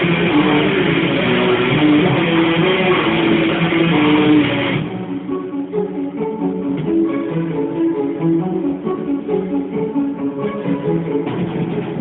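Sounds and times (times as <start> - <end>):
picked guitar notes: 0.0 - 10.0
electric guitars playing metal: 0.0 - 12.0.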